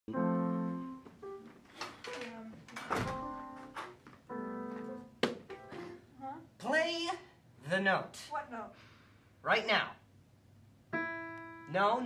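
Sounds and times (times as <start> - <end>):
digital piano chords: 0.1 - 6.1, 10.9 - 12.0.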